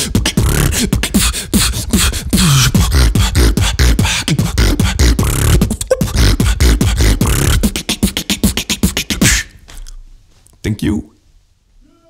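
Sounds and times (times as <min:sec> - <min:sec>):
person beatboxing: 0:00.0 - 0:10.0.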